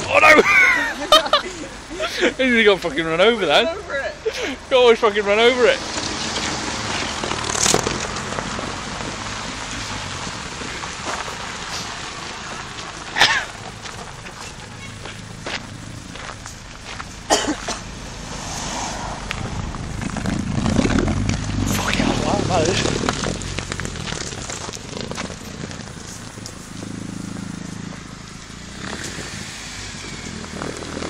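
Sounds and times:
car engine: 0.0 - 31.0
car tyres on gravel: 0.0 - 31.0
rough hiss: 10.7 - 20.8
low rumble: 11.4 - 31.0.

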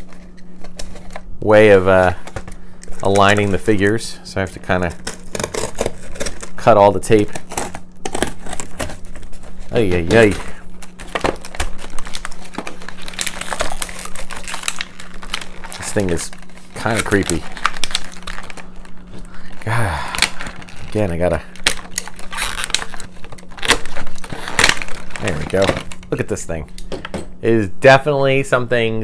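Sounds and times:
tape being cut: 4.9 - 18.6, 21.6 - 25.9
plastic packaging clicking and tapping: 7.2 - 19.2, 21.6 - 26.0.

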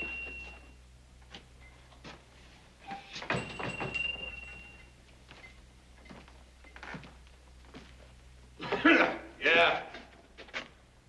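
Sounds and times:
man clearing his throat: 8.6 - 9.4.

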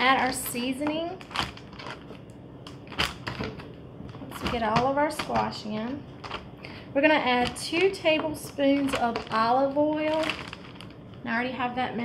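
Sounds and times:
squash cubes dropped into plastic bag: 7.4 - 11.0.

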